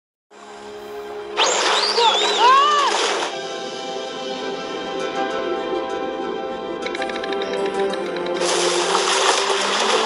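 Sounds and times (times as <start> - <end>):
sustained background music: 0.3 - 10.0
gliding wavering calls: 1.4 - 3.2
rush of water from plunge: 8.4 - 10.0.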